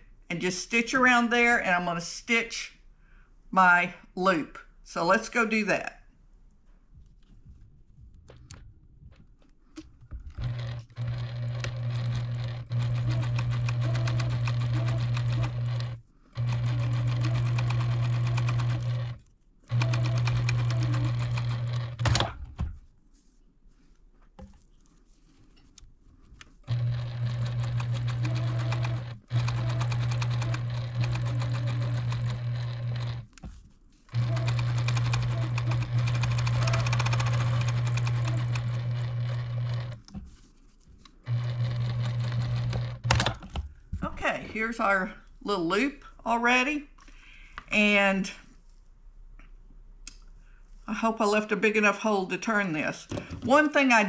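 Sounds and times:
electric sewing machine stitching: 10.3s - 22.4s, 26.6s - 33.4s, 34.1s - 40.1s, 41.2s - 43.4s.

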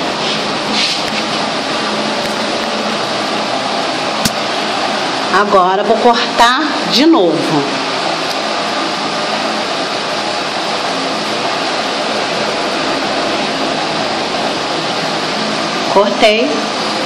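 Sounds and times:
steady rushing noise: 0.0s - 17.0s.

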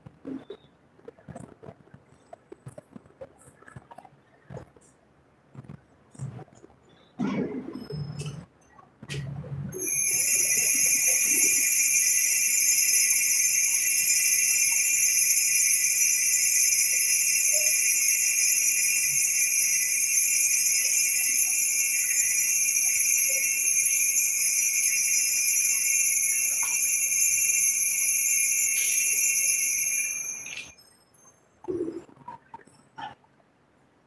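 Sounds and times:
small bells jingling: 9.7s - 31.6s.

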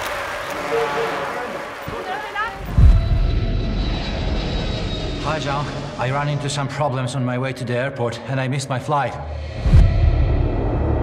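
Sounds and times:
jet airliner roar: 0.5s - 6.8s
deep low boom: 2.6s - 4.9s.

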